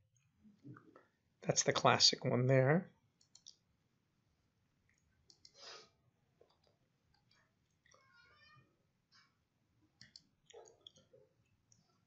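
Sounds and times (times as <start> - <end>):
faint computer mouse clicks: 5.3 - 5.6, 10.0 - 11.0
soft rustle or breath: 5.5 - 6.0.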